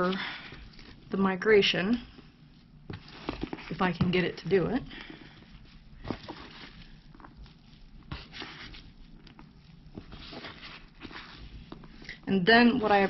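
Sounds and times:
hand scraping damp bedding: 2.0 - 13.0.

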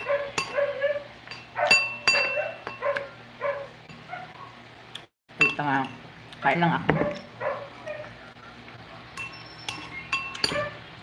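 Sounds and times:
metal spoon clinking ceramic bowl: 0.0 - 0.6, 1.2 - 2.8, 5.4 - 6.0, 9.2 - 10.8.

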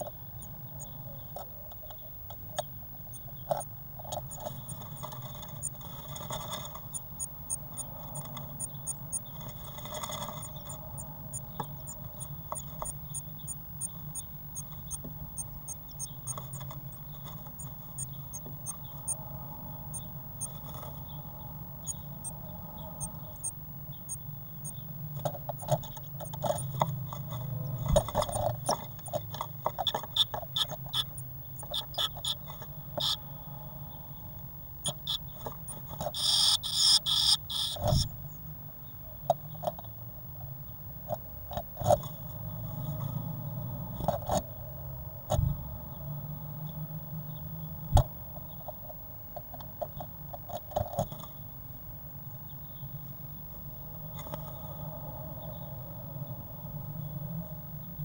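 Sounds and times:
low electrical hum: 0.0 - 58.0
bird scratching and tapping in nest: 1.3 - 19.2, 24.1 - 33.2, 34.8 - 38.2, 49.4 - 51.4.

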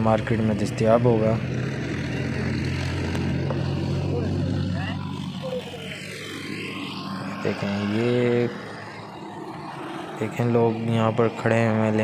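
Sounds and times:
engine running steadily: 0.0 - 12.0
faint voices: 0.0 - 12.0.

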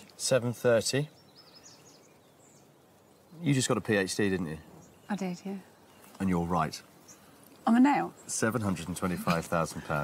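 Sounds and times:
faint high bird chirps: 0.0 - 10.0.

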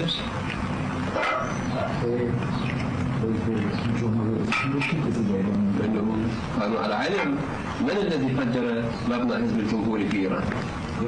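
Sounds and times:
steady recording hum: 0.0 - 11.0.

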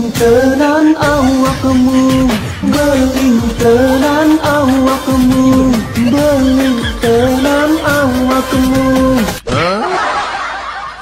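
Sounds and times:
people laughing: 3.6 - 8.8, 9.5 - 11.0.

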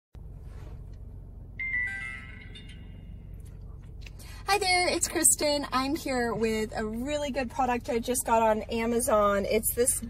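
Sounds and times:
steady low hum: 0.2 - 10.0
descending electronic chime: 1.6 - 3.3.

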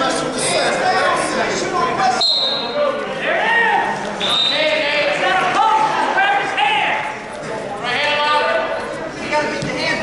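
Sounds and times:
people shouting in a gymnasium: 2.0 - 8.8.

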